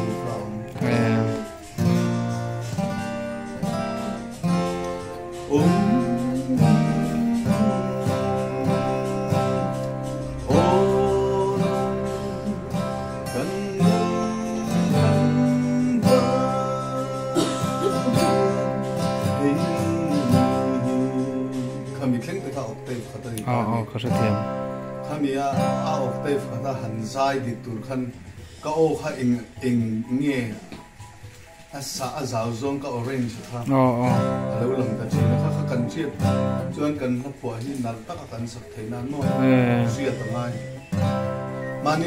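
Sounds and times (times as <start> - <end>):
man singing: 0.0 - 2.7, 5.3 - 24.5, 39.2 - 40.4
acoustic guitar strumming: 0.0 - 42.0.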